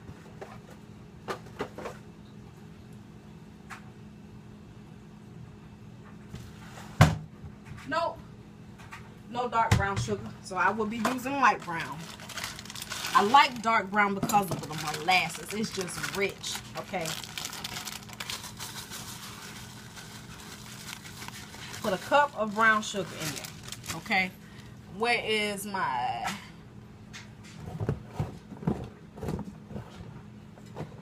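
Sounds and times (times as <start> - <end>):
plastic bag crinkling: 11.0 - 24.7.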